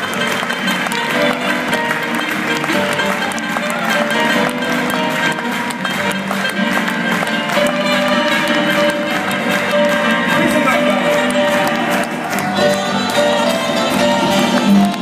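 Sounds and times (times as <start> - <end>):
jazz band playing: 0.0 - 15.0.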